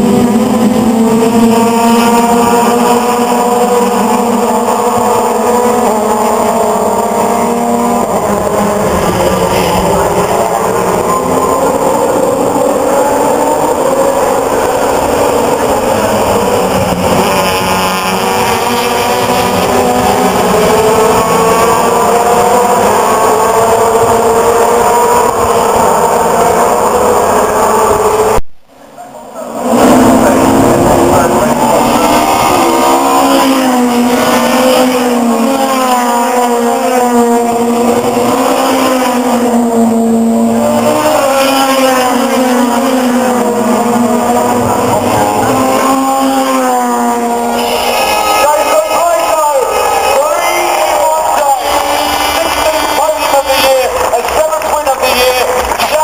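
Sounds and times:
racing cars passing at speed: 0.0 - 56.0.

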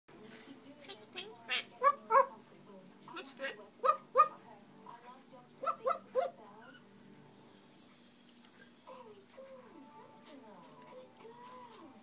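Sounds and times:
dog-like barks: 3.8 - 4.4, 5.6 - 6.4.

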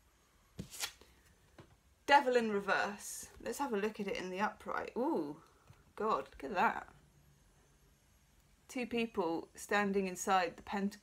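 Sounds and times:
cards rustling: 0.6 - 1.3.

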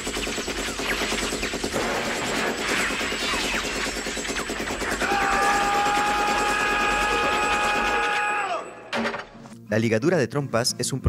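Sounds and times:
machine-gun fire: 0.0 - 8.2.

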